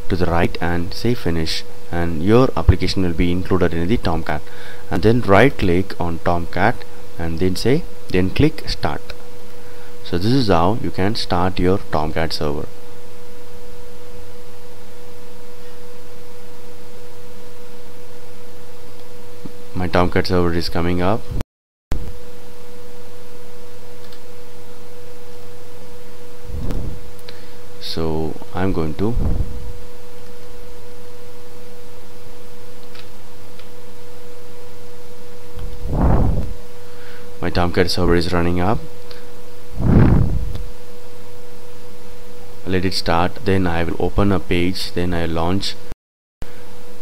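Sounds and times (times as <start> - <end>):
low electrical hum: 0.0 - 21.4, 22.0 - 47.0.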